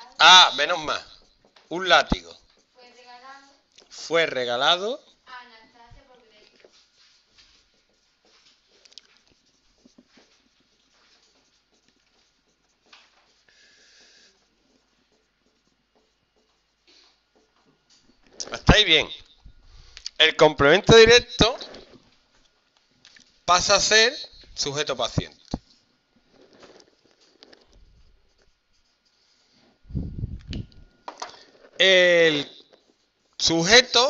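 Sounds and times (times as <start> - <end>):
marker squeaking on whiteboard: 0.0 - 3.2, 6.5 - 19.5.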